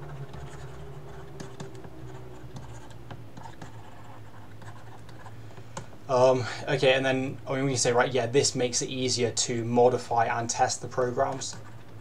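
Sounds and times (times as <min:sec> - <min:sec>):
stylus tapping and scratching: 0:00.0 - 0:06.0, 0:10.4 - 0:12.0
low steady hum: 0:00.0 - 0:12.0.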